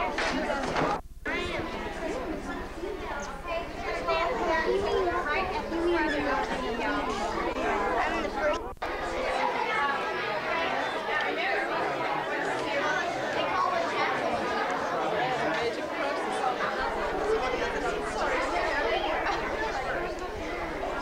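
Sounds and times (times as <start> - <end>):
babble of voices: 0.0 - 21.0.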